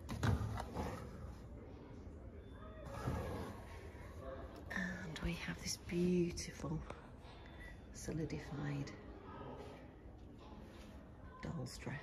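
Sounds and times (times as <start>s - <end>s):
woman speaking softly: 4.6s - 7.1s, 7.9s - 9.2s, 11.2s - 12.0s.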